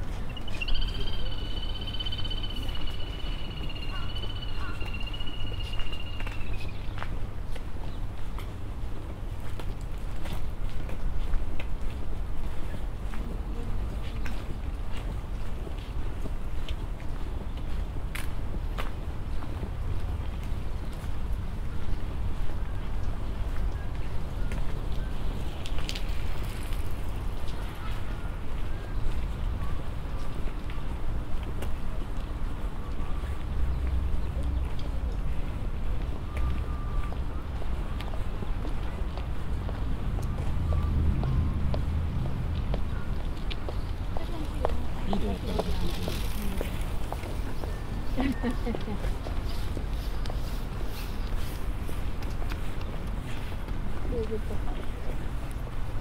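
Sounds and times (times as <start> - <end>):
distant city traffic: 0.0 - 56.0.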